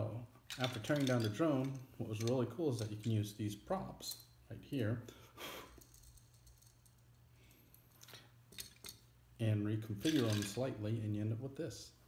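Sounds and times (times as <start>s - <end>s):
plastic toy pieces clicking: 0.5s - 1.8s, 10.1s - 10.6s.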